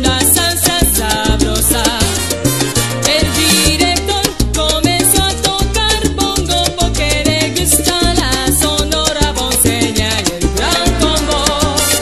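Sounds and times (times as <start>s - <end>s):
salsa band playing: 0.0s - 12.0s.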